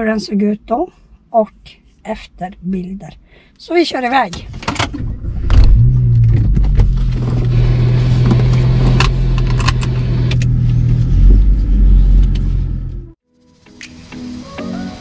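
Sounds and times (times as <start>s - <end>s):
sharp clicks and rattles: 4.3s - 13.0s
car engine starting and running: 4.4s - 13.2s
seatbelt being fastened: 8.1s - 10.6s.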